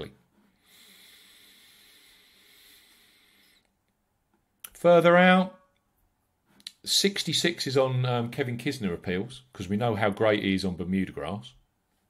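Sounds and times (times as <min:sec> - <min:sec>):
person exhaling: 0:00.6 - 0:03.7.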